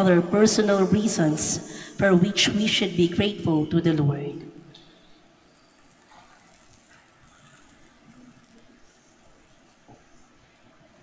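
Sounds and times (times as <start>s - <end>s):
low steady hum: 0.0s - 11.0s
soft hiss: 4.6s - 11.0s.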